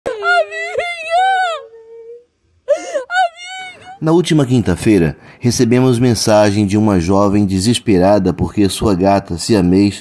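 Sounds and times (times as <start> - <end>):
woman weeping with wailing cries: 0.1 - 4.0.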